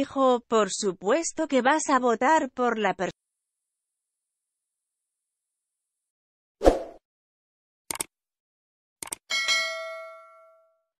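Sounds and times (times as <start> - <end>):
quick clicks: 7.9 - 8.1, 9.0 - 9.2
bright bell ding: 9.3 - 10.8.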